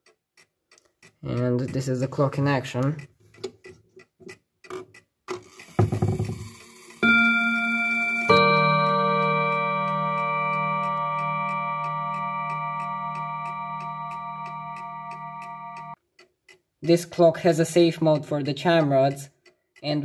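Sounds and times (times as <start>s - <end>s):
clock ticking: 0.0s - 20.0s
clock chime rods ringing: 7.0s - 16.0s.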